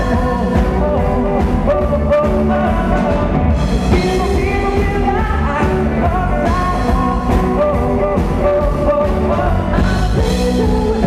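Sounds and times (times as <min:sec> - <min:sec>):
drums: 0:00.0 - 0:11.0
electric guitars: 0:00.0 - 0:11.0
person singing: 0:00.0 - 0:11.0.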